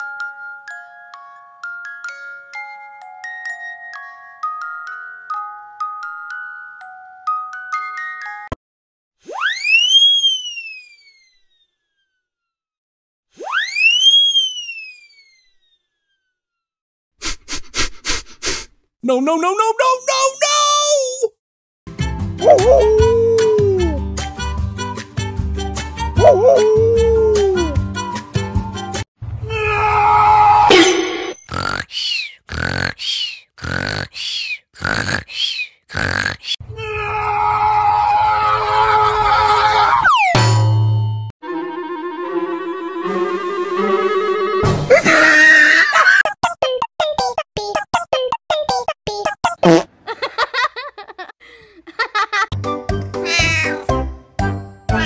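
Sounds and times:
high sweeping whistle tone: 9.3 - 11.6, 13.4 - 15.8.

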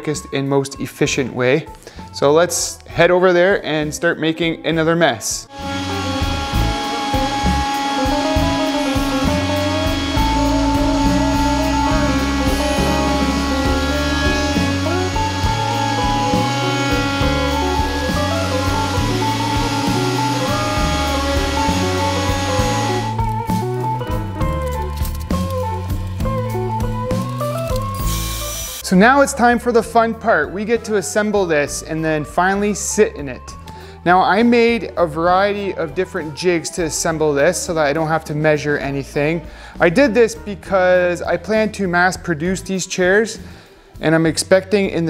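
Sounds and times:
background music with bass line: 5.4 - 45.0
router table whining: 5.5 - 28.9.

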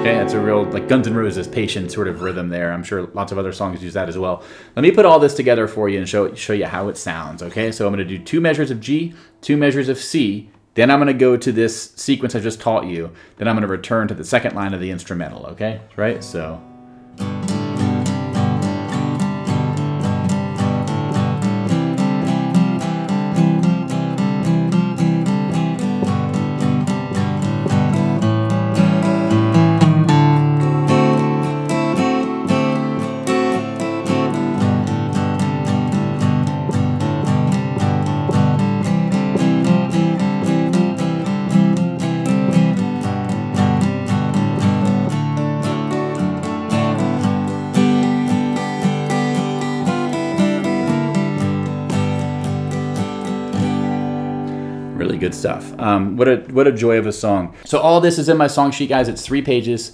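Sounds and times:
acoustic guitar country strumming: 0.0 - 4.3, 4.9 - 10.1, 16.0 - 56.4.

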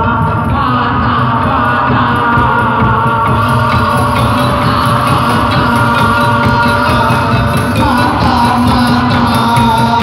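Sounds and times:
barrel drums: 0.0 - 10.0
drum kit beat: 0.0 - 10.0
keyed percussion instrument: 0.0 - 10.0.

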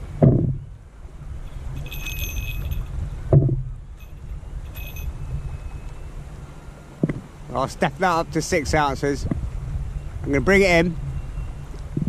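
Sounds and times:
steady low rumble: 0.0 - 12.0
small bell jingling: 1.4 - 3.0, 4.0 - 5.3.

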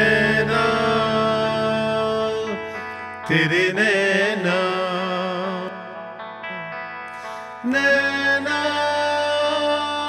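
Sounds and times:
man singing a long note: 0.0 - 5.8, 7.6 - 10.0
instrumental backing: 0.0 - 10.0.

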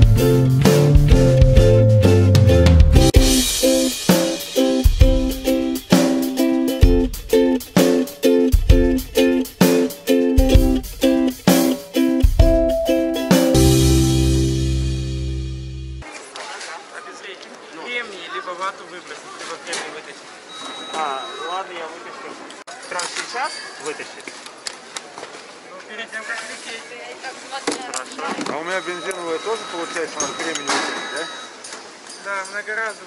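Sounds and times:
background music: 0.0 - 16.0
voices talking: 27.2 - 33.0.

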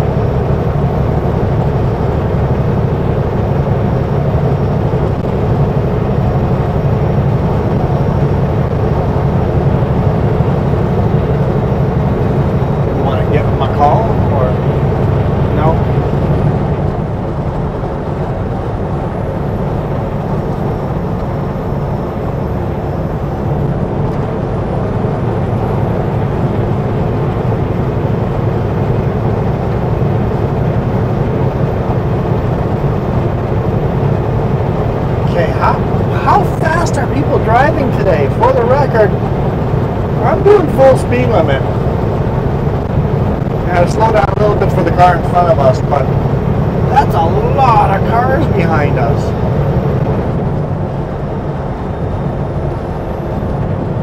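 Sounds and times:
diesel truck engine drone: 0.0 - 54.0
road noise: 0.0 - 54.0.

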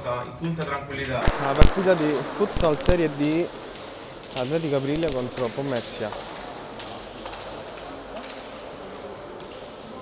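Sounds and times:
indistinct voices in hall: 0.0 - 10.0.

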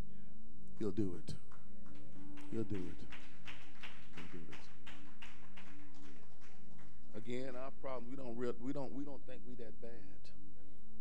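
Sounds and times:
sustained keyboard chords: 2.0 - 3.4.

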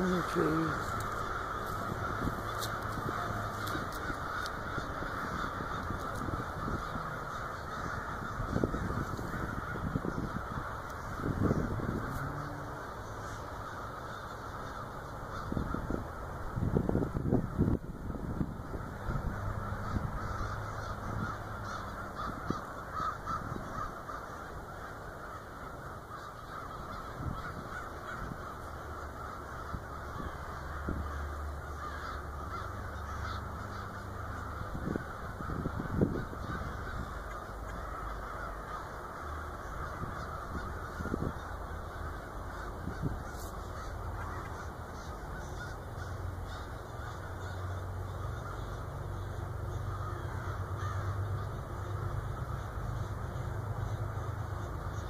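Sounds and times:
crows cawing: 0.0 - 17.9, 18.6 - 55.0.

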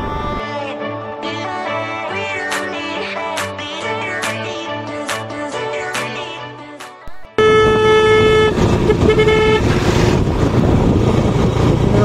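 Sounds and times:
wind and road noise: 0.0 - 0.4, 7.1 - 12.0
vehicle horn honking: 7.4 - 9.8.

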